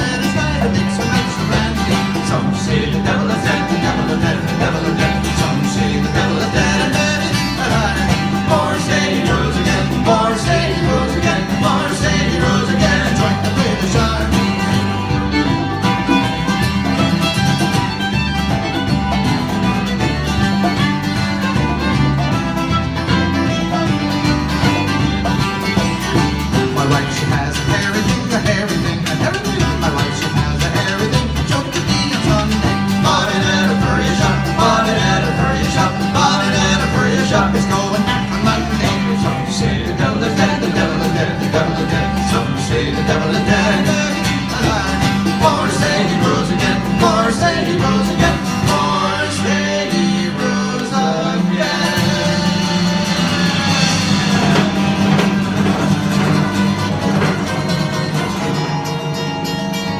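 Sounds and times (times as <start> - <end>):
fiddle: 0.0 - 59.4
bass line: 0.0 - 59.9
congas: 0.0 - 59.9
strummed acoustic guitar: 0.0 - 59.9.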